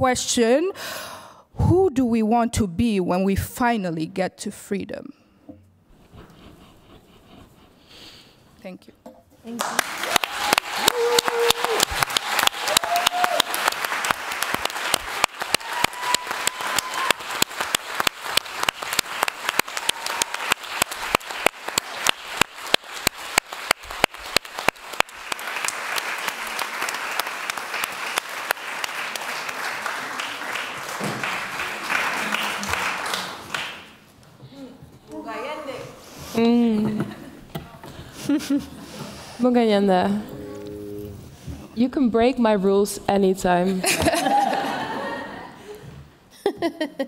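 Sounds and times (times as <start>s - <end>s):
audience applauding: 9.5s - 34.0s
crowd calling out: 10.0s - 13.6s.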